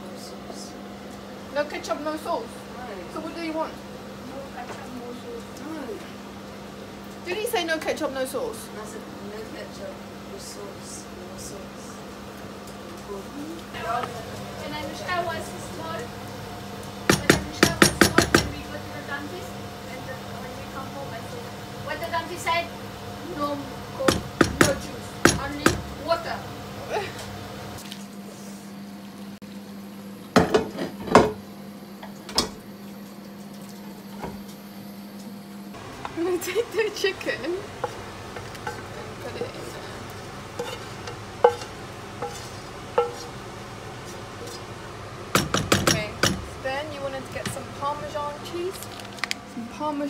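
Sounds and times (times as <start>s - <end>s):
wooden spoon knocking on frying pan: 17.1s - 18.6s, 24.1s - 26.0s, 41.4s - 43.4s, 45.3s - 46.5s
wooden spoon scraping frying pan: 40.5s - 44.7s.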